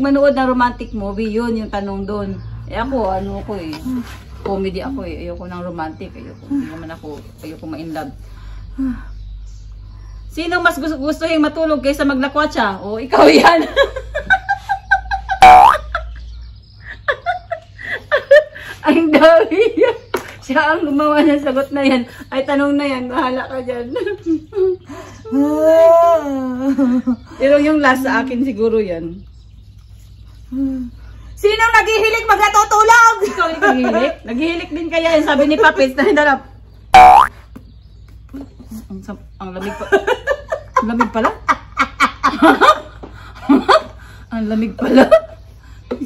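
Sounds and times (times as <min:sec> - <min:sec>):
laughter: 0:13.2 - 0:20.2, 0:23.1 - 0:25.2, 0:26.6 - 0:27.5, 0:33.2 - 0:34.3, 0:39.6 - 0:44.0, 0:44.8 - 0:45.5
cartoon boing sound effect: 0:15.4 - 0:15.8, 0:37.0 - 0:37.3.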